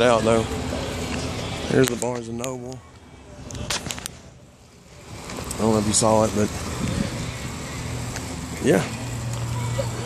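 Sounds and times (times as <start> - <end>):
road traffic hum: 0.0 - 10.0.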